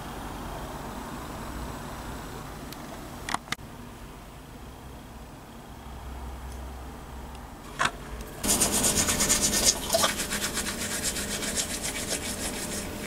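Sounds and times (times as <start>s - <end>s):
toothbrush scrubbing teeth: 8.4s - 13.0s.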